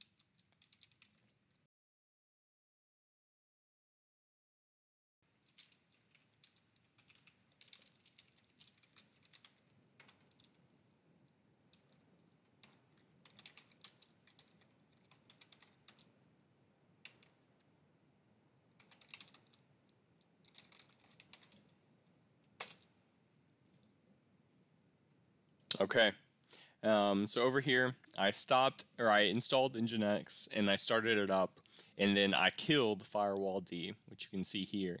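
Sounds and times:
keyboard typing: 0.0s - 1.3s, 5.5s - 10.9s, 11.6s - 16.2s, 17.0s - 17.7s, 18.7s - 21.8s.

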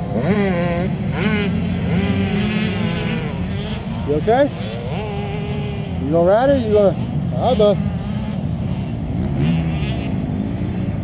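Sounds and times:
dirt bike engine idling: 0.0s - 11.0s.

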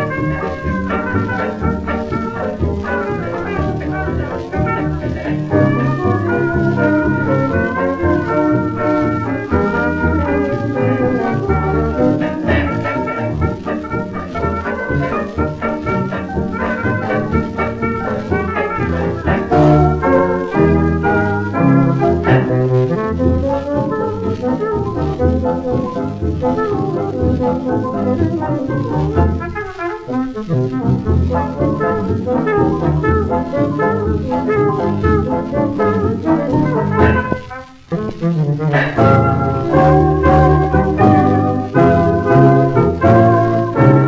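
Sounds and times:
jazz dance band on old record: 0.0s - 44.0s.

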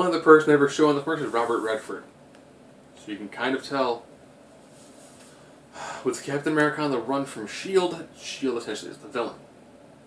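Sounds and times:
man breathing in: 5.2s - 6.1s.

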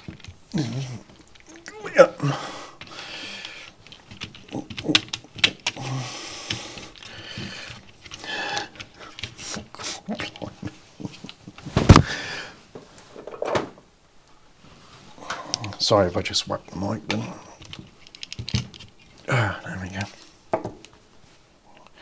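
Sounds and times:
perfboard handling clicks and rattles: 2.8s - 5.8s, 17.0s - 19.2s.

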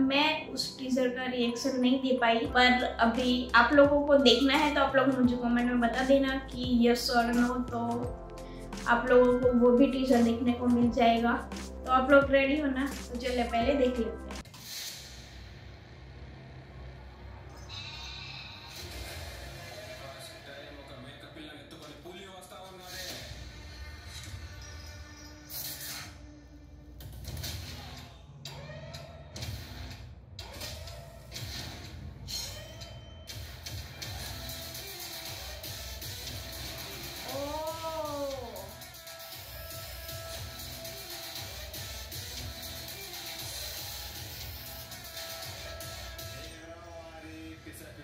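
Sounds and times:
background music with steady beat: 0.0s - 48.0s.

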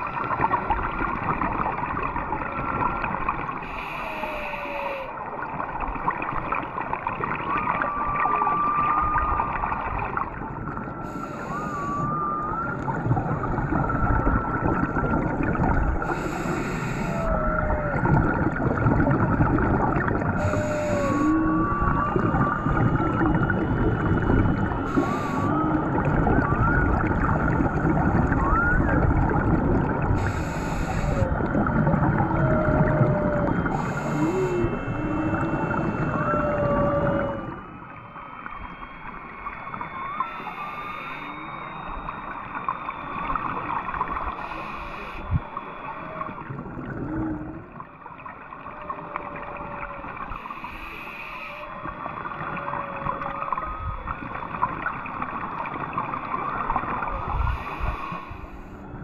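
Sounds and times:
scuba regulator bubbles: 0.0s - 59.0s
underwater crackling: 0.0s - 59.0s
whale song underwater: 0.0s - 59.0s.

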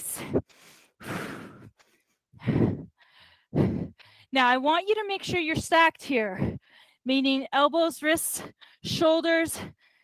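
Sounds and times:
woman breathing hard: 0.1s - 4.3s, 6.4s - 7.0s.

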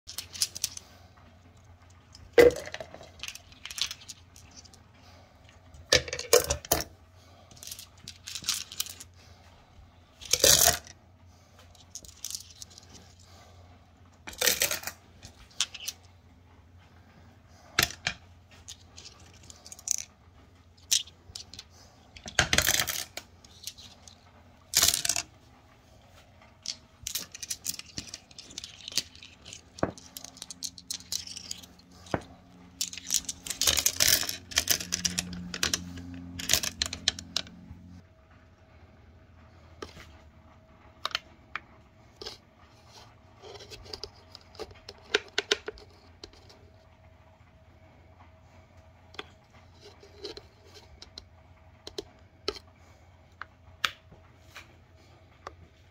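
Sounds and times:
small stones clicking and rattling: 0.1s - 0.9s, 1.5s - 4.9s, 7.5s - 9.1s, 11.7s - 13.2s, 14.3s - 16.0s, 17.8s - 20.1s, 20.7s - 25.3s, 26.6s - 37.6s.

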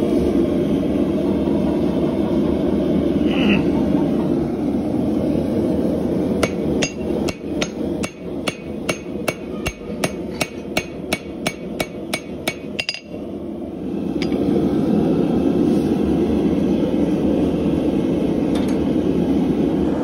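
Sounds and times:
hammer ringing on anvil: 6.4s - 13.2s.

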